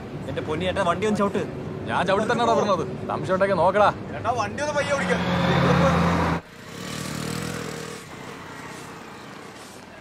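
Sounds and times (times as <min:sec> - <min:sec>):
faint steady background noise: 0:00.0 - 0:10.0.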